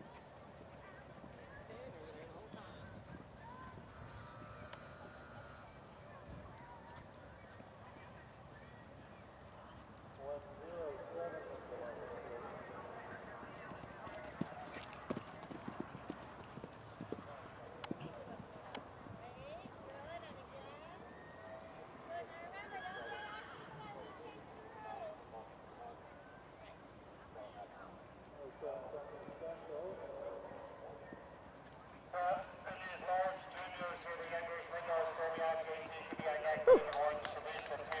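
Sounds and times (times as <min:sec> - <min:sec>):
horse hooves on sand: 0:32.7 - 0:38.0.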